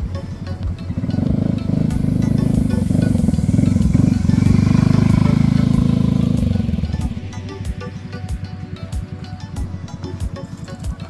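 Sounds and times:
background music: 0:00.0 - 0:11.0
motor scooter passing: 0:00.1 - 0:11.0.

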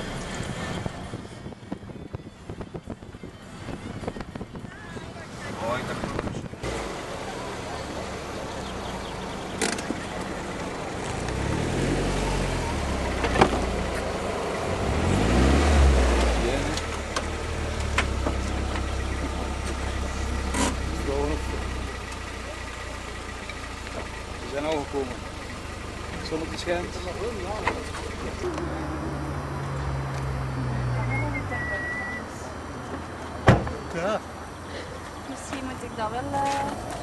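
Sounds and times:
car engine revving: 0:05.4 - 0:37.0
background voices: 0:26.1 - 0:33.1.

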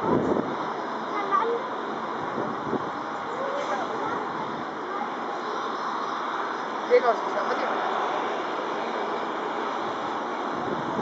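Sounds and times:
faint voices: 0:00.0 - 0:08.2.

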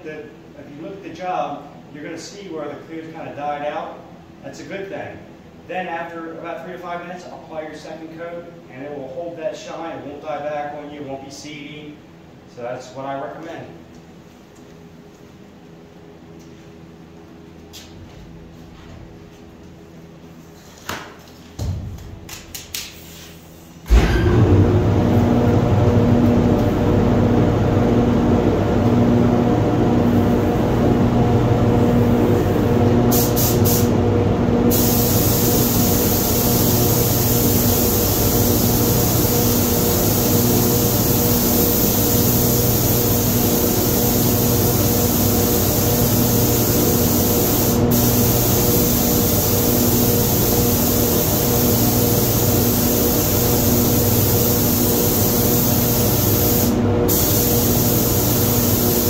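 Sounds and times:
air system humming: 0:00.0 - 0:59.0
spray gun hissing: 0:31.8 - 0:34.0, 0:34.7 - 0:59.0.

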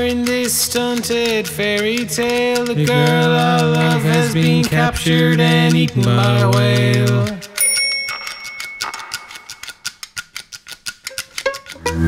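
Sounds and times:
dry ticking clicks: 0:00.0 - 0:12.0
ringing bell-like tone: 0:07.6 - 0:09.8.

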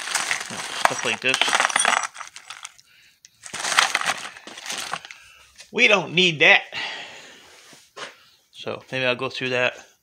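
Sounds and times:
hands rummaging through bolts: 0:00.0 - 0:02.8, 0:03.4 - 0:05.2
plastic bags crinkling: 0:00.0 - 0:02.8, 0:03.4 - 0:05.2.

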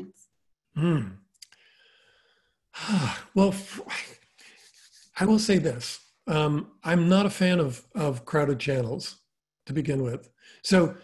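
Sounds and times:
man humming: 0:00.8 - 0:01.2
man speaking: 0:00.8 - 0:01.3, 0:02.8 - 0:04.3, 0:05.1 - 0:11.0
mouth click: 0:01.3 - 0:01.6.

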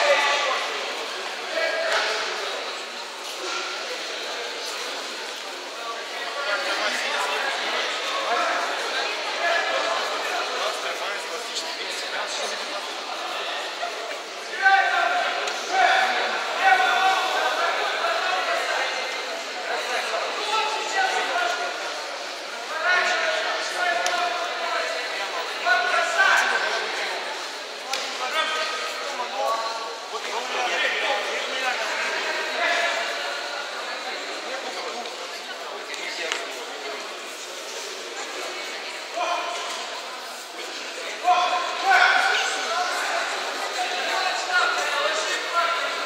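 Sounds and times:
murmur of a sports hall: 0:00.0 - 0:46.0.

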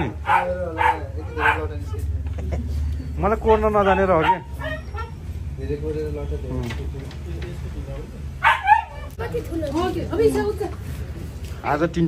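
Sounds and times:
dog whining yips: 0:03.5 - 0:05.3.

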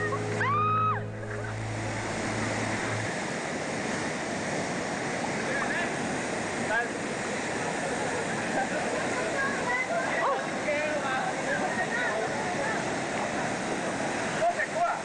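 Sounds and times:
music track: 0:00.0 - 0:03.1
waterfall rushing into pool: 0:00.0 - 0:15.0.

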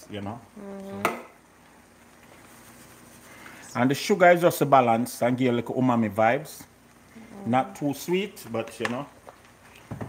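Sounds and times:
onions sizzling in a frying pan: 0:00.0 - 0:09.2.

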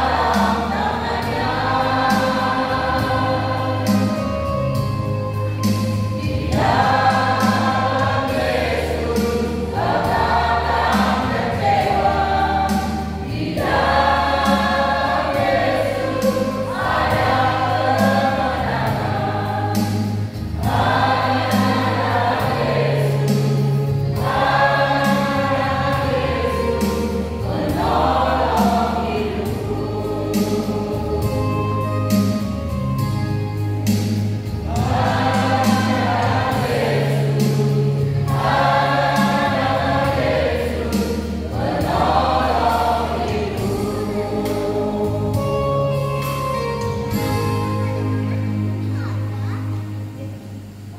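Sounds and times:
choir singing a hymn: 0:00.0 - 0:48.9
low bass notes: 0:00.0 - 0:50.9.

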